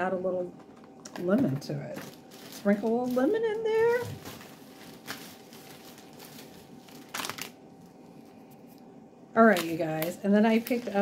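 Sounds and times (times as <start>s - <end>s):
packaging rustle: 1.9s - 8.1s
packaging crinkle: 1.9s - 8.3s, 9.5s - 11.0s.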